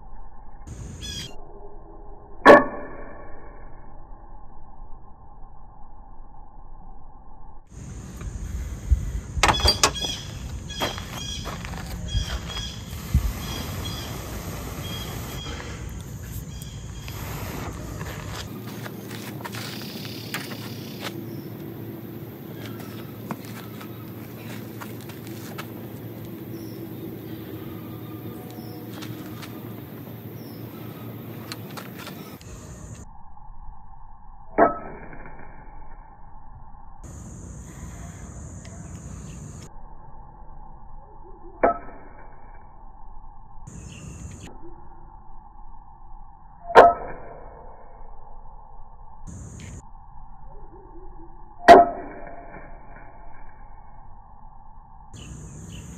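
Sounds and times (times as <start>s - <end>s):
outdoor background: 0.0s - 55.9s.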